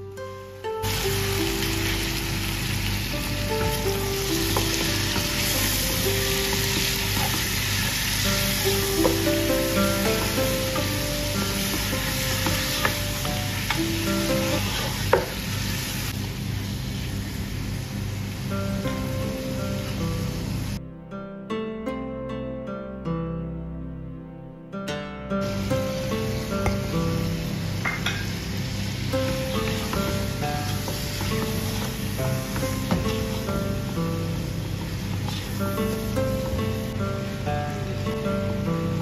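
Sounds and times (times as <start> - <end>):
soft plucked background music: 0.0 - 39.0
meat sizzling in hot oil: 0.8 - 18.4, 25.4 - 37.4.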